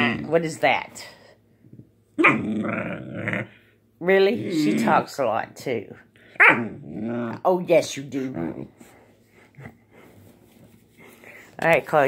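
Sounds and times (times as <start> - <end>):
puppy growly vocalisation: 0.0 - 0.6, 2.2 - 5.2, 6.2 - 7.5.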